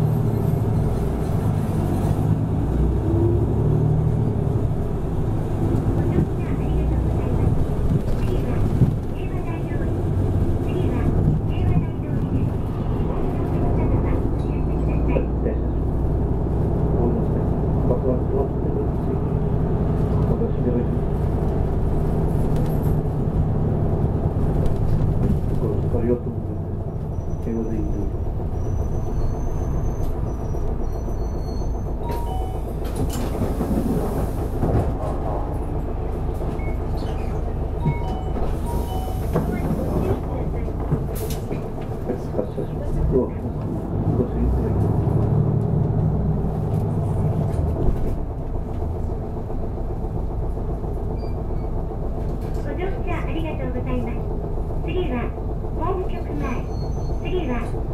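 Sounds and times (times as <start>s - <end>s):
bus engine running: 0.0s - 57.9s
road rumble: 0.0s - 57.9s
voices: 5.6s - 15.9s, 34.7s - 45.1s, 52.4s - 57.9s.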